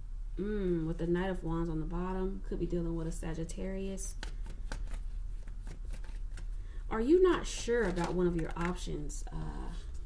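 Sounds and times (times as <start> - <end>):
cards being shuffled: 4.1 - 6.6, 7.4 - 9.0.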